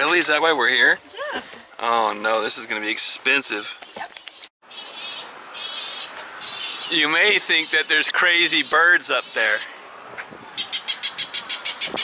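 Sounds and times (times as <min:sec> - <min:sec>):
recorded bird calls warbling: 0:03.7 - 0:09.7, 0:10.5 - 0:12.0.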